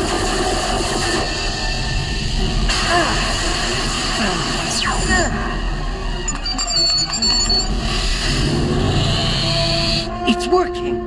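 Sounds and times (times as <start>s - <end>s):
short high electronic tones: 6.2s - 7.8s.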